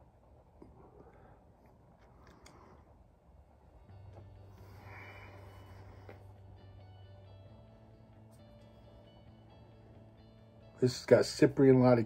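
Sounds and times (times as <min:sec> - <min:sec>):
faint background music: 0:00.0 - 0:12.0
breathy exhale: 0:04.5 - 0:06.4.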